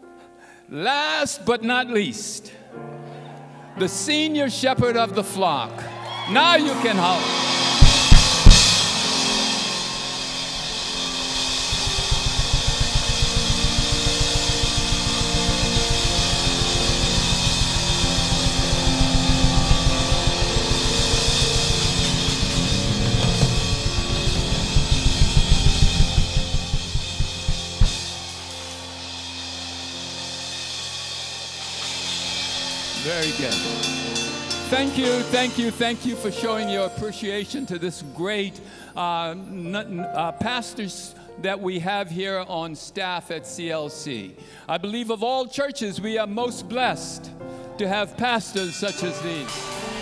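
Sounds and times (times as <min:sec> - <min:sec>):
crowd cheering and applauding: 0:05.7 - 0:29.2
fast drum kit beat: 0:07.5 - 0:29.3.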